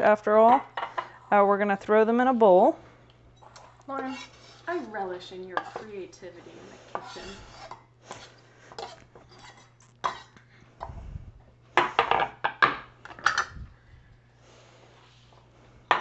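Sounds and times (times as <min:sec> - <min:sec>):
knife scraping wooden cutting board: 0:04.0 - 0:05.0, 0:05.6 - 0:05.9, 0:06.9 - 0:10.2.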